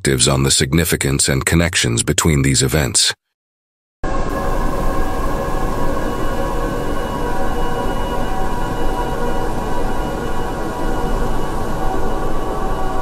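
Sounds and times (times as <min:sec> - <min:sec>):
loud rumbling drone: 0:04.0 - 0:13.0
sustained tones: 0:04.1 - 0:13.0.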